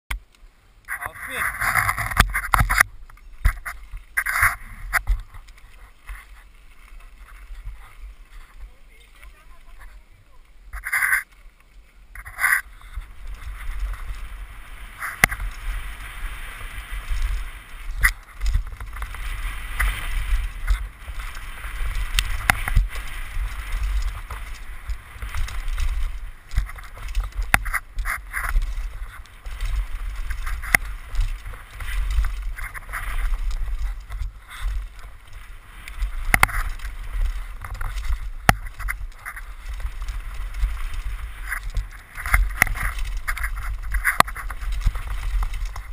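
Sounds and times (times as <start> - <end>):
bike tyre rumble on dirt: 0.1 - 45.9
wind on microphone: 12.1 - 45.9.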